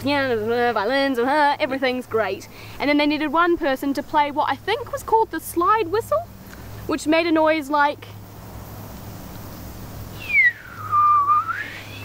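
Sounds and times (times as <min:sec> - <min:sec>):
person whistling a sliding note: 0:10.2 - 0:12.0.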